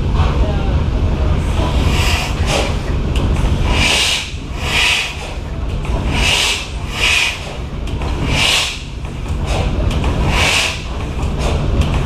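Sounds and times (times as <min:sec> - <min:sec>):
stationary engine rumbling: 0:00.0 - 0:12.0
hissing puffs: 0:03.6 - 0:05.4, 0:06.0 - 0:07.6, 0:08.2 - 0:08.9, 0:09.5 - 0:11.0.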